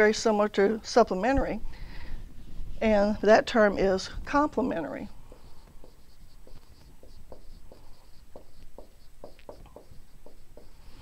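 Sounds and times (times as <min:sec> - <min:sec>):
marker writing on whiteboard: 0:04.3 - 0:11.0.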